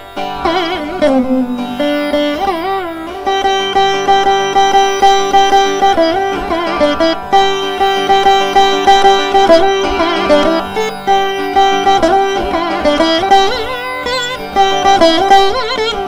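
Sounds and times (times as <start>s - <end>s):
veena melody: 0.0s - 16.0s
violin melody: 0.0s - 16.0s.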